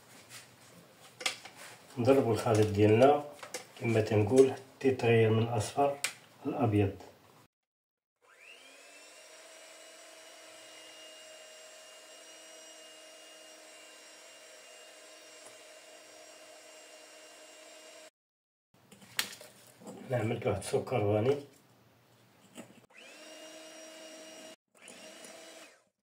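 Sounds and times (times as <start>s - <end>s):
electric hand mixer whining: 8.2s - 18.1s, 22.9s - 26.0s.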